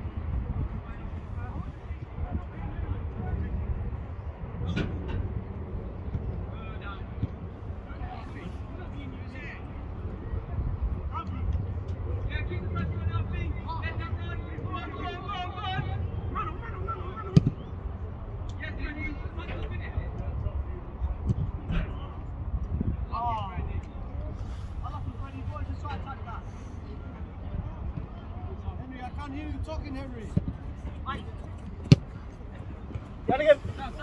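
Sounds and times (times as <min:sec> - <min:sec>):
wind rumble on microphone: 0:00.0 - 0:34.0
ball thumps: 0:31.8 - 0:32.2
boot kicking football: 0:31.8 - 0:32.2.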